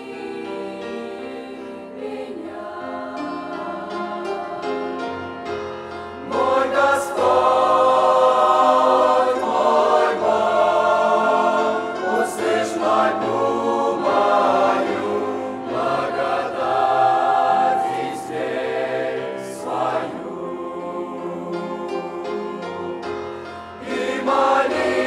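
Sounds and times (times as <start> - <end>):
choir singing: 0.0 - 25.0.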